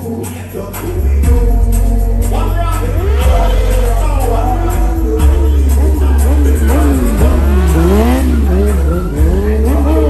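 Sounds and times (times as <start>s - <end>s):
deep bass: 0.0s - 10.0s
motorcycle engine revving: 1.1s - 10.0s.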